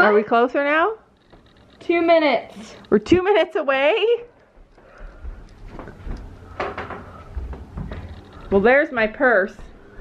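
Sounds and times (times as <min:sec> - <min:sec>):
footsteps: 0:04.5 - 0:10.0.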